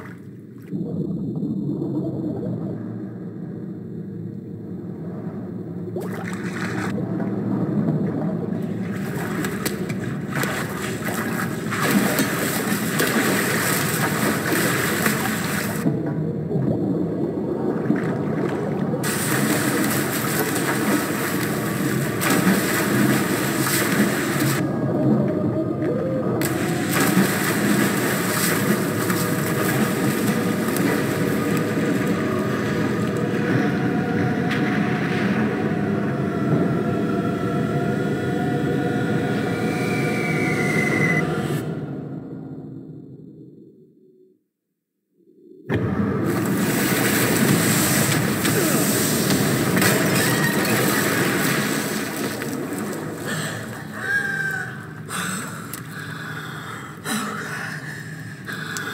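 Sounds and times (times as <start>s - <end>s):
bathwater splashing and churning: 6.0s - 24.7s, 26.4s - 33.6s, 46.2s - 54.0s.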